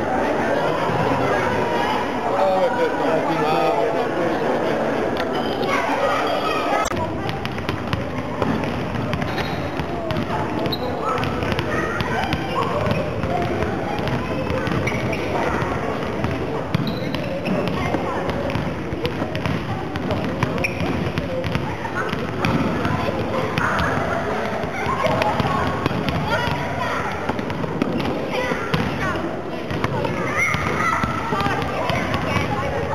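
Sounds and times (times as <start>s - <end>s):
children chattering and calling: 0.0s - 32.9s
volleyballs hit and bouncing: 6.8s - 32.9s.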